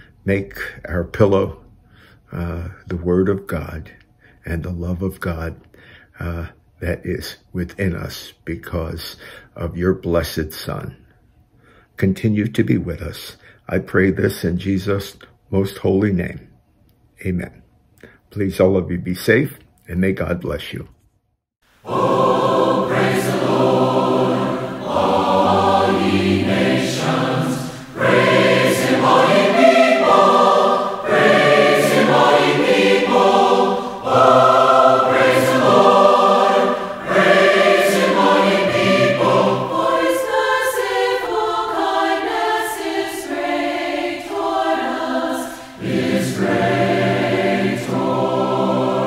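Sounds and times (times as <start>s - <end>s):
choir singing a hymn: 21.8s - 49.0s.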